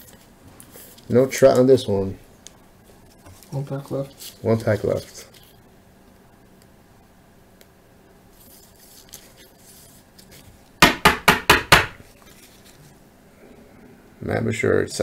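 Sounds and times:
faint rustling of card: 2.5 - 5.6, 8.3 - 10.7, 12.0 - 13.0.

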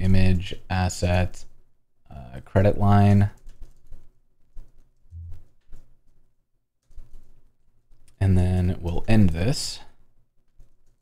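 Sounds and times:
computer keyboard typing: 3.1 - 8.2, 10.4 - 11.0.

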